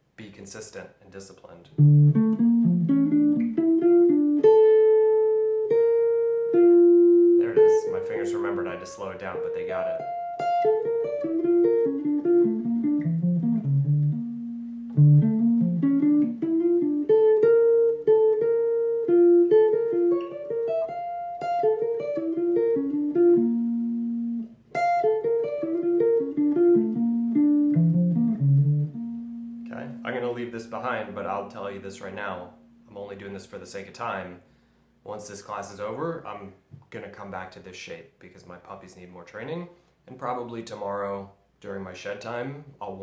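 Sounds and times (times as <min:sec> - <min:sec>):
electric jazz guitar arpeggios: 0:01.8 - 0:32.8.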